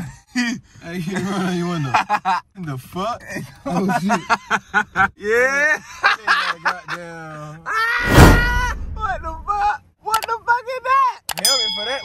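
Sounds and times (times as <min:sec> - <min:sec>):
sharp mouse clicks: 0:10.1 - 0:10.3
bell ding: 0:11.4 - 0:12.0.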